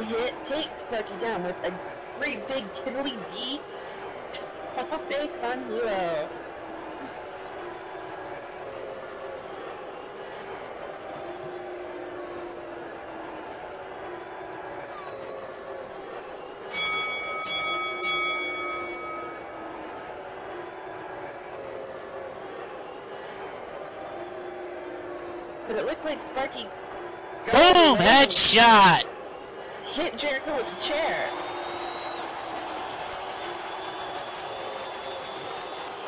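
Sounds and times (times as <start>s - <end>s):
faint background music: 0.0s - 36.0s
bell ringing: 16.7s - 20.0s.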